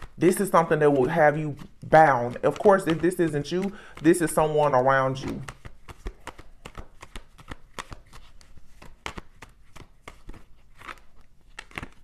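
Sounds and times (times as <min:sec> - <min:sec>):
cards being shuffled: 0:00.0 - 0:12.0.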